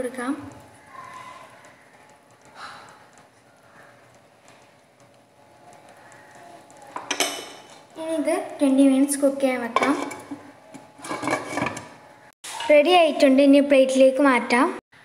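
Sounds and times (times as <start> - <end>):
pan lid clattering: 9.8 - 12.7.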